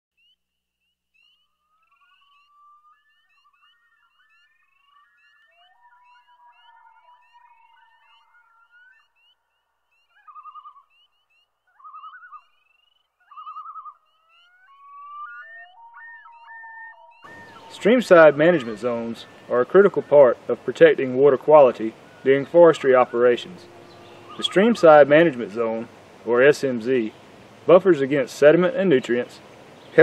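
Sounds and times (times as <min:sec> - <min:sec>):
warbling whistled tones: 0:01.5 - 0:09.4, 0:10.0 - 0:25.9
trilled bursts: 0:17.2 - 0:29.3
short rising chirps: 0:23.1 - 0:26.1.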